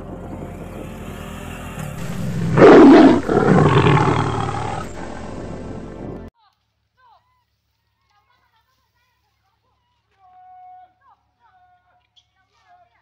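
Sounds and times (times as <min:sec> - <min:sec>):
background music: 0:01.3 - 0:06.3
loud animal roar: 0:02.0 - 0:05.6.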